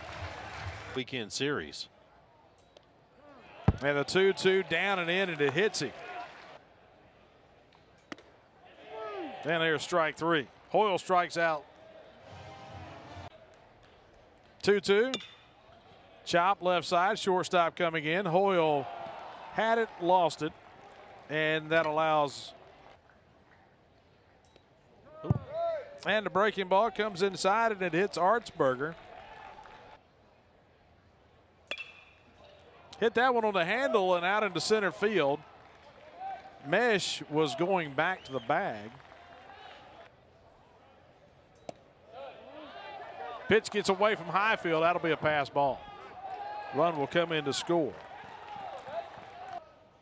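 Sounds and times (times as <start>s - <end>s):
metal bat striking ball: 15.1s - 15.5s, 31.7s - 32.2s.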